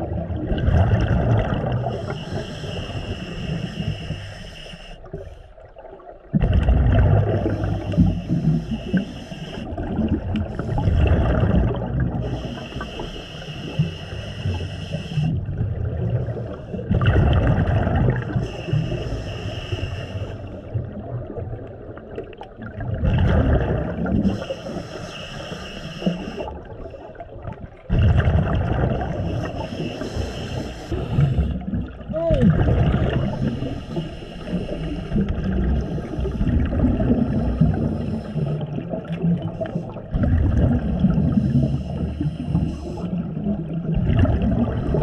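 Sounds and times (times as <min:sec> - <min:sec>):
exhaled bubbles rumbling: 0:00.0 - 0:04.3, 0:05.0 - 0:45.0
regulator hissing inhalations: 0:01.9 - 0:05.5, 0:07.5 - 0:09.7, 0:12.2 - 0:15.4, 0:18.4 - 0:20.6, 0:24.3 - 0:26.6, 0:29.3 - 0:31.6, 0:33.3 - 0:35.2, 0:37.4 - 0:38.7.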